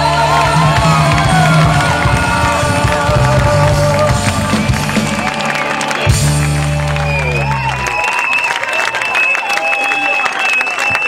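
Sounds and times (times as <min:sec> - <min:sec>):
live rock band playing: 0:00.0 - 0:08.0
crowd yelling: 0:00.0 - 0:11.0.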